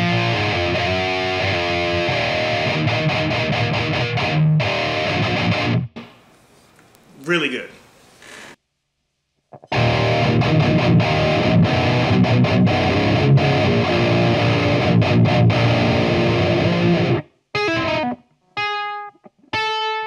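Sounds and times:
distorted electric guitar riff: 0:00.0 - 0:06.2, 0:09.5 - 0:20.0.

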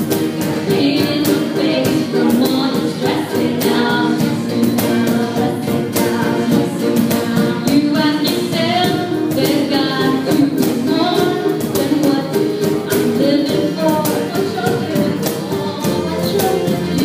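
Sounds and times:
acoustic guitar: 0:00.0 - 0:17.0
cajon beat: 0:00.0 - 0:17.0
electric guitar: 0:00.0 - 0:17.0
woman singing into a microphone: 0:00.2 - 0:17.0.

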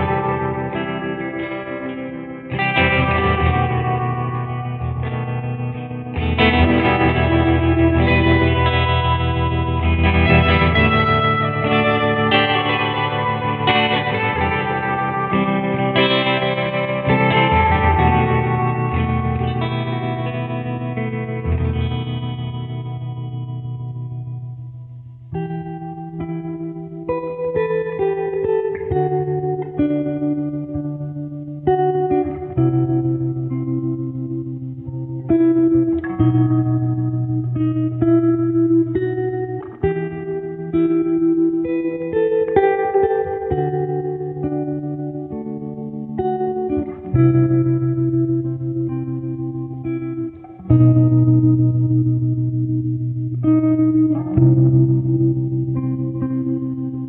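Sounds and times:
held guitar chords with effects: 0:00.0 - 0:57.0
plucked guitar notes: 0:00.0 - 0:57.0
bass line: 0:02.7 - 0:15.4.

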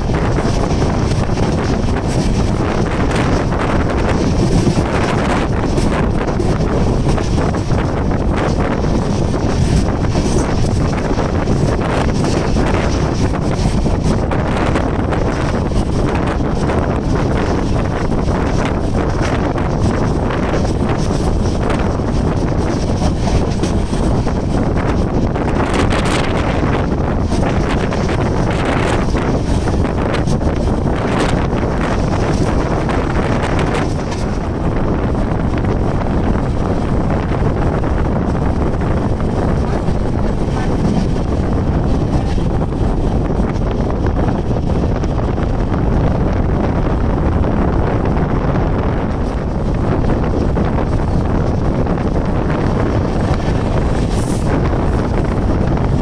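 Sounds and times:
train running on rails: 0:00.0 - 0:56.0
wind buffeting microphone: 0:00.0 - 0:56.0.

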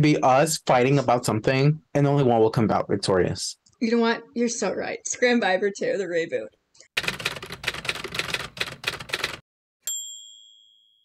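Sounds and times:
typewriter keys clacking: 0:07.0 - 0:09.4.

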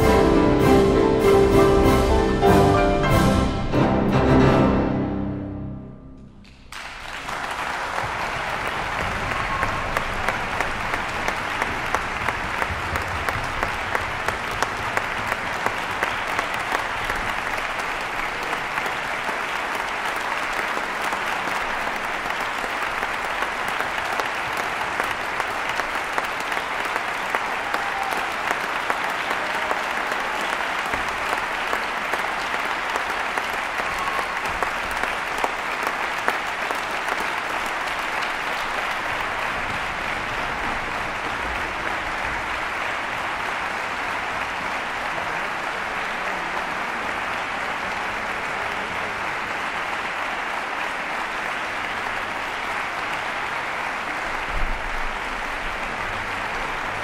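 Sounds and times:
audience applause: 0:06.5 - 0:57.0.

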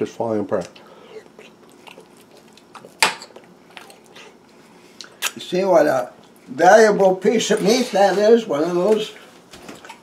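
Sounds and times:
faint chewing: 0:00.6 - 0:05.4.

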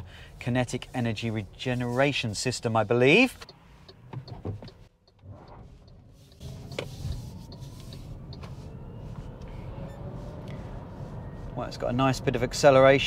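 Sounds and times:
road and tyre rumble: 0:00.0 - 0:13.0.

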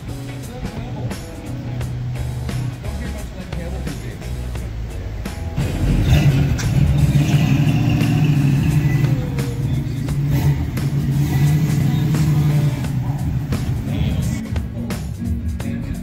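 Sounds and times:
car engine idling deep rumble: 0:00.0 - 0:16.0
music playing: 0:00.0 - 0:16.0.

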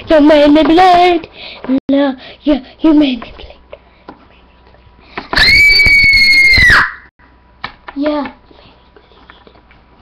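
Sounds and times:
girl screaming: 0:05.3 - 0:07.1.

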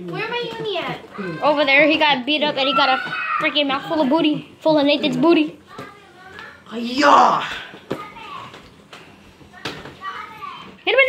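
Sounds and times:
child yelling: 0:02.6 - 0:03.7.

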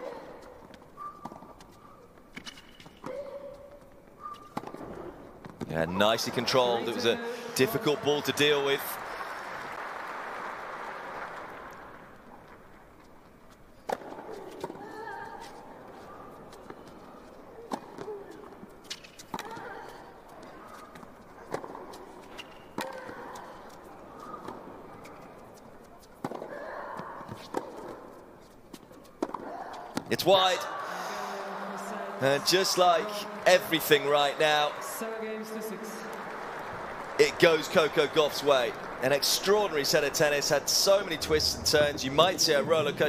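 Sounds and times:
crowd noise: 0:00.0 - 0:02.2, 0:03.4 - 0:18.8, 0:19.6 - 0:43.0.

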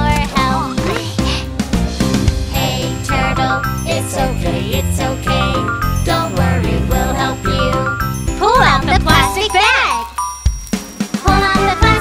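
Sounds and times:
children's song with jingly music: 0:00.0 - 0:12.0.

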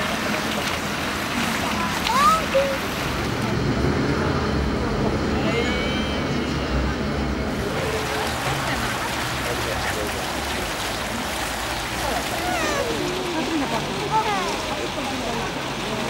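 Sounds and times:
fountain water splashing: 0:00.0 - 0:16.0
people talking indistinctly: 0:01.5 - 0:16.0.

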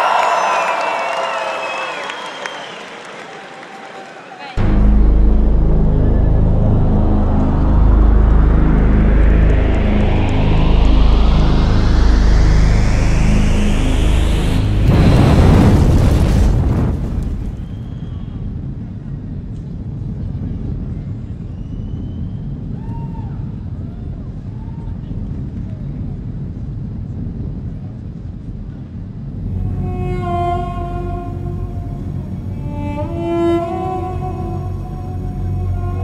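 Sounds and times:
rising electronic sweep: 0:04.6 - 0:16.2, 0:29.4 - 0:36.0
deep bass drone: 0:04.6 - 0:16.7, 0:29.0 - 0:36.0
boom-like swell: 0:04.6 - 0:18.6, 0:29.3 - 0:36.0.

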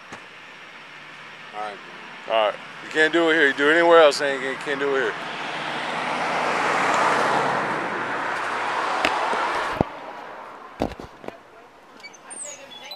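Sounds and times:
car passing on road: 0:00.0 - 0:11.7.

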